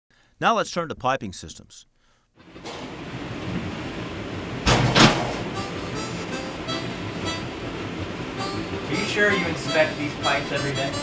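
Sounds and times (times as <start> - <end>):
heavy thuds: 4.6 - 6.3
background music: 5.4 - 11.0.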